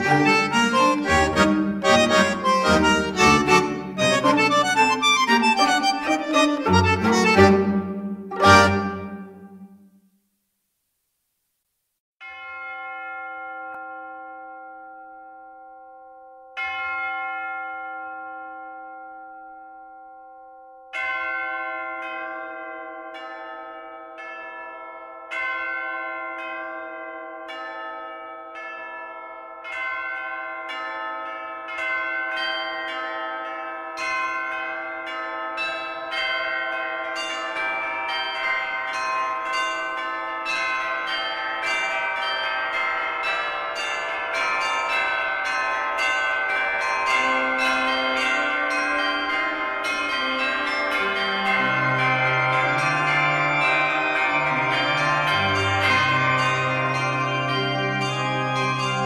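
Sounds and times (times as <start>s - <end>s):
bells ringing: 0.0s - 9.7s, 12.2s - 59.0s.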